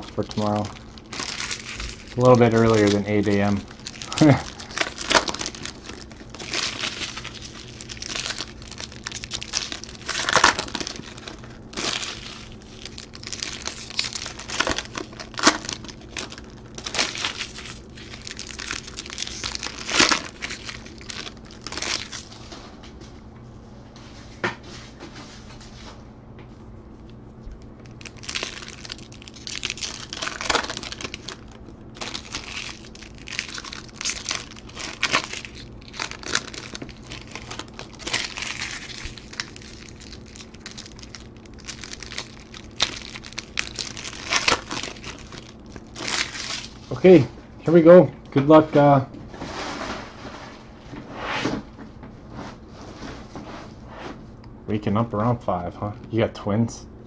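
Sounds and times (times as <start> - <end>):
foil wrappers tearing and crinkling: 0.0 - 22.5, 27.8 - 47.0
faint low hum: 0.0 - 57.0.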